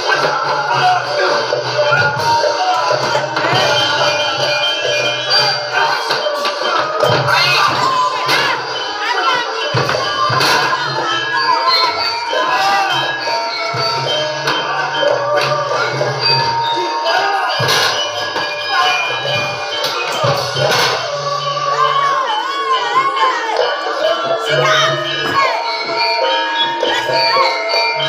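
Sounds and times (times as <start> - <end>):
children shouting: 0.0 - 28.0
crowd voices: 0.0 - 28.0
gamelan music: 0.0 - 28.0.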